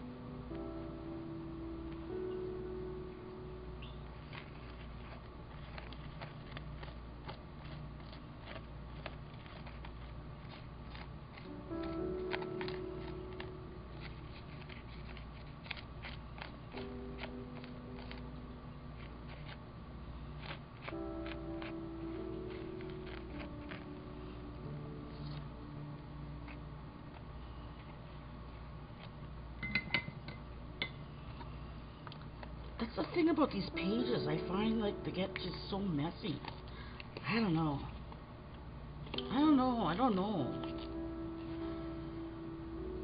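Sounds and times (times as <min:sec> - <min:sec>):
low steady hum: 0:00.0 - 0:43.0
brush handle scratching paper: 0:04.2 - 0:18.3, 0:19.0 - 0:19.6
held musical note: 0:40.3 - 0:43.0.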